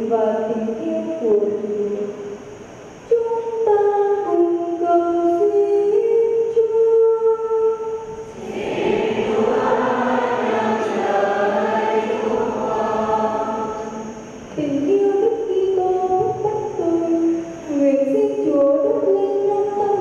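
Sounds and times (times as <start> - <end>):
congregation singing a hymn: 8.2 - 14.8.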